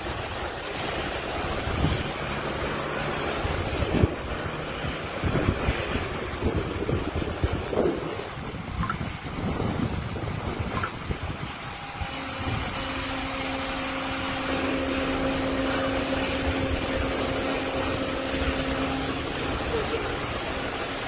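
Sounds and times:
wind buffeting microphone: 0.0s - 21.0s
steady low hum: 10.6s - 21.0s.

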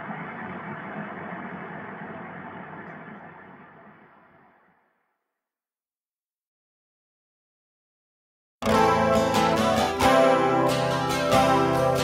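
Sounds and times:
rushing noise drone: 0.0s - 4.9s.

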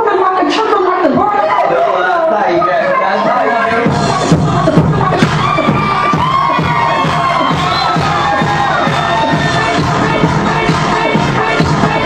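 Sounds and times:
electronic dance music: 0.0s - 12.0s
crowd cheering: 5.2s - 10.1s.

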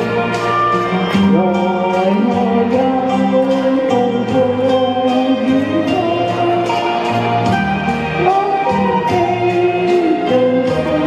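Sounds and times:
backing track with steady beat: 0.0s - 11.0s.

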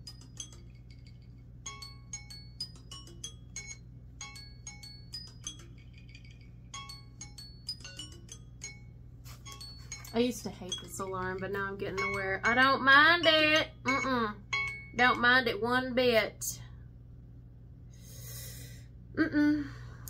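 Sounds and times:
chime-like alarm melody: 0.0s - 15.4s.

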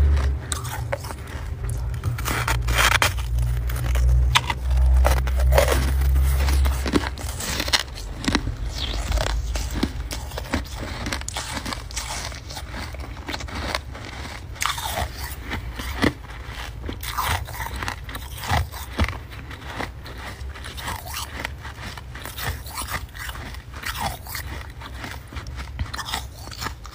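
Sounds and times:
chewing crunchy frost: 0.0s - 26.9s.

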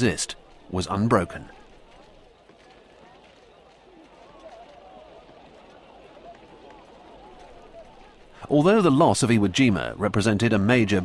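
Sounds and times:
faint indistinct voices: 0.0s - 8.6s
low background noise: 0.0s - 11.0s.

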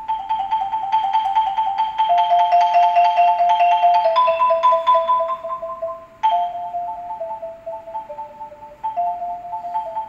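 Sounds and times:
marimba rolled chords: 0.0s - 10.0s.

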